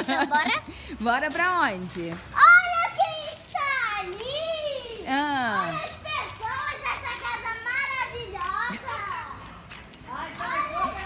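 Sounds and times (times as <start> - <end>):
children calling out and chattering: 0.0 - 1.5, 2.1 - 11.0.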